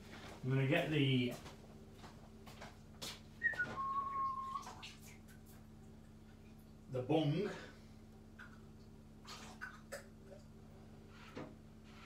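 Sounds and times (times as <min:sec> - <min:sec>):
short whistle: 0:03.4 - 0:04.7.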